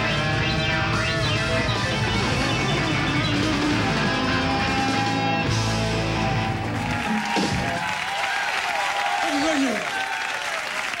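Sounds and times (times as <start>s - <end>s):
audience cheering and yelling: 6.1s - 11.0s
audience applauding: 6.3s - 11.0s.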